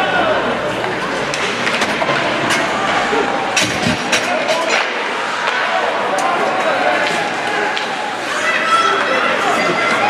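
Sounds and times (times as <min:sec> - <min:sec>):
voices of players and spectators: 0:00.0 - 0:10.0
clacks of sticks and puck: 0:00.8 - 0:02.7, 0:03.6 - 0:10.0.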